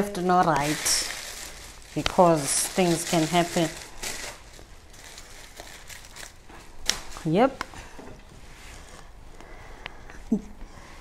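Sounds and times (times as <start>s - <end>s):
packaging rustling and crinkling: 0.0s - 7.6s.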